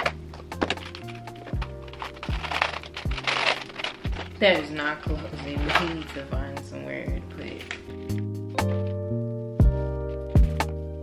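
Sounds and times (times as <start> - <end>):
plastic bag crinkling: 0.0 - 6.5
kick drum: 9.6 - 9.8.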